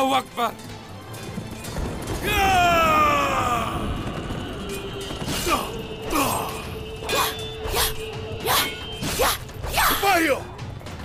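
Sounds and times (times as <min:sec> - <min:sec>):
shouted cry: 0:02.2 - 0:03.9
sword swish: 0:07.1 - 0:10.0.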